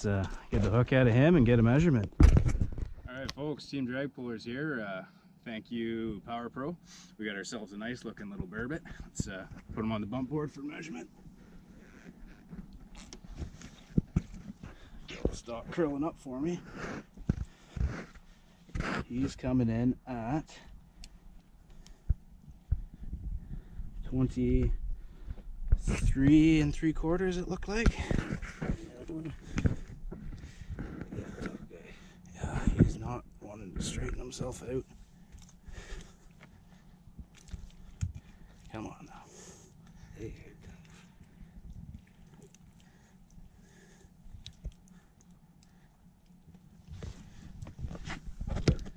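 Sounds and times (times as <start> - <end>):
low steady rumble: 3.9 - 48.9
rustling and handling noises: 39.6 - 48.9.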